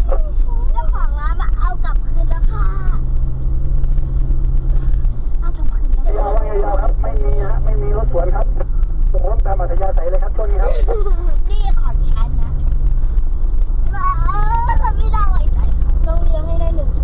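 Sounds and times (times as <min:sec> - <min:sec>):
car engine and tyres rumbling: 0:00.0 - 0:17.0.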